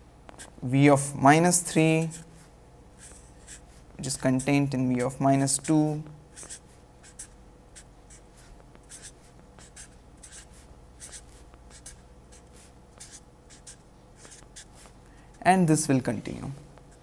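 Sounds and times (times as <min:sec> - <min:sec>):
marker scratching on paper: 0:02.0 - 0:04.7, 0:05.5 - 0:15.0.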